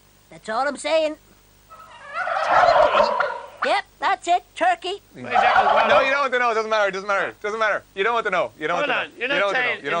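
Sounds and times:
person imitating turkey gobble: 5.3s - 6.1s.

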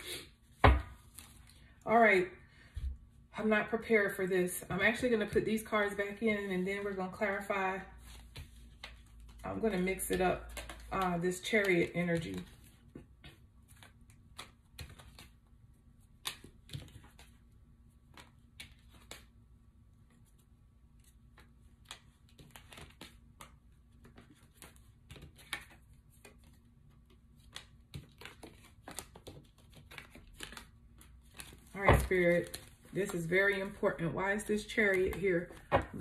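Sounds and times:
cards being shuffled: 7.9s - 36.0s.

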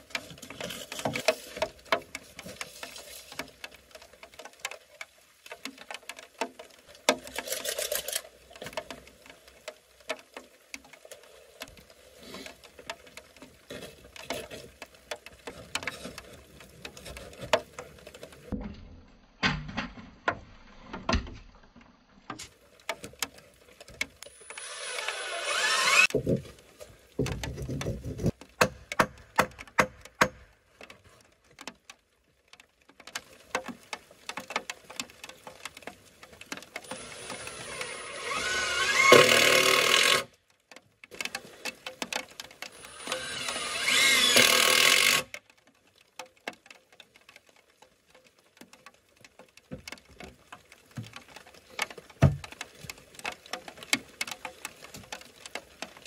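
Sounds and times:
cordless drill whining: 24.5s - 26.1s, 36.9s - 40.3s, 42.9s - 45.2s.

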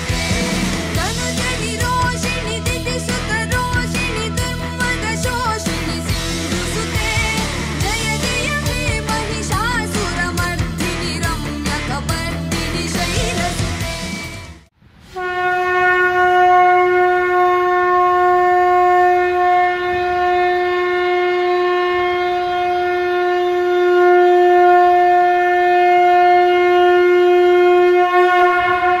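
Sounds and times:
conch shell blown: 15.0s - 29.0s.

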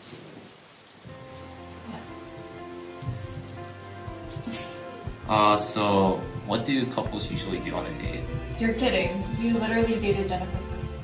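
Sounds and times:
even hiss: 0.0s - 11.0s
soft background music: 1.0s - 11.0s.

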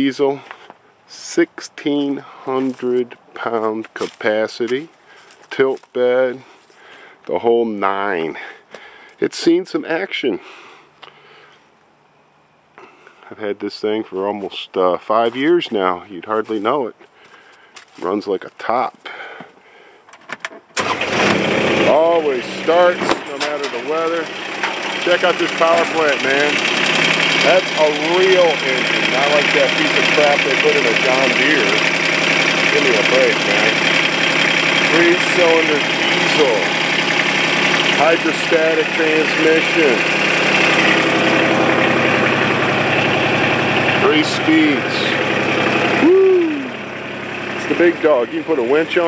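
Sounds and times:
diesel engine starting and running: 0.0s - 9.2s, 19.1s - 49.0s.

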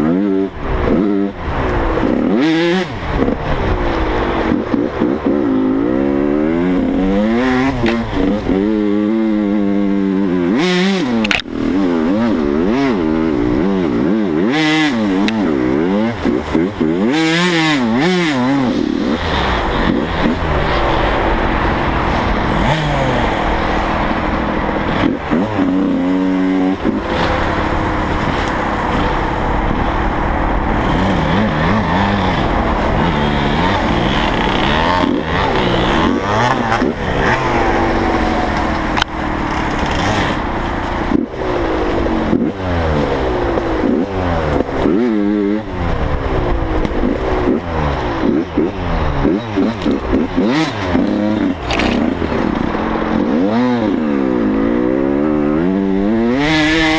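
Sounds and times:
dirt bike engine revving: 0.0s - 56.9s.

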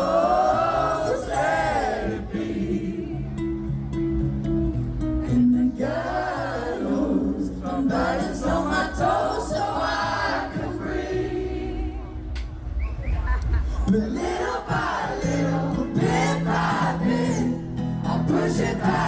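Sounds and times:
several voices singing: 0.0s - 3.4s, 5.3s - 12.2s, 13.9s - 19.0s
acoustic guitar: 0.0s - 12.4s, 13.5s - 19.0s.

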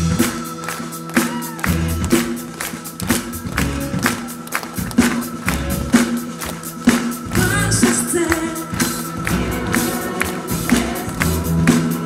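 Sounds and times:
live worship band music: 0.0s - 12.0s.

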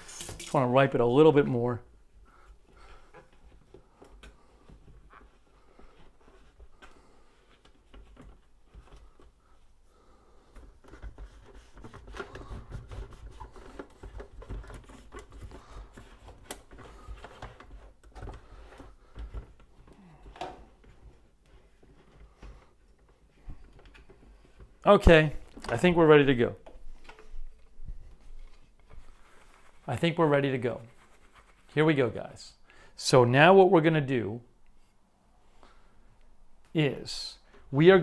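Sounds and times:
small clicks and knocks of handling: 10.5s - 24.8s, 26.6s - 29.0s
paper towel rubbing and rustling: 27.8s - 32.4s.

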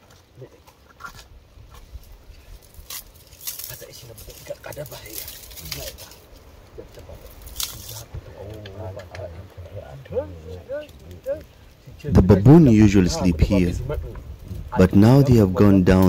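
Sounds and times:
campfire snapping and crackling: 0.0s - 16.0s
quiet voices talking: 3.5s - 16.0s.

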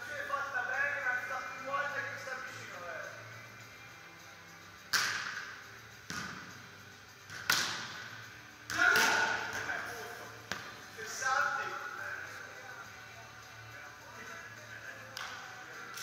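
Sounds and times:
volleyball smacks echoing: 4.9s - 5.4s, 7.3s - 8.0s, 8.7s - 9.7s.

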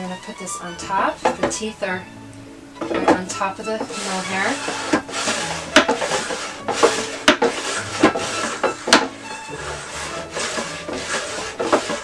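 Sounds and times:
fiber picker scraping rasp: 0.0s - 2.0s, 2.6s - 12.0s
background music: 0.0s - 12.0s.

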